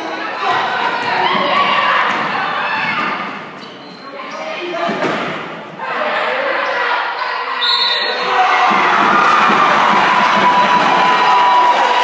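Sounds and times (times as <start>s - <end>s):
echoing voices in a gym: 0.0s - 12.0s.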